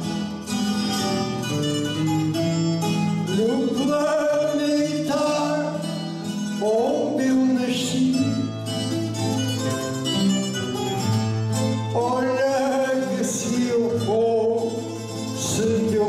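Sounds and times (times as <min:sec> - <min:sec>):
strummed and plucked guitar: 0:00.0 - 0:16.0
man singing: 0:03.2 - 0:09.0, 0:11.7 - 0:16.0.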